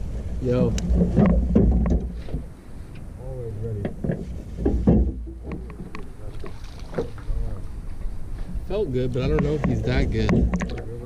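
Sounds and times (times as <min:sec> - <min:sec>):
steady low rumble: 0:00.0 - 0:11.0
voices: 0:00.4 - 0:00.9, 0:03.0 - 0:04.2, 0:04.8 - 0:11.0
sharp knocks and clicks: 0:00.7 - 0:02.5, 0:03.8 - 0:07.2, 0:09.2 - 0:11.0.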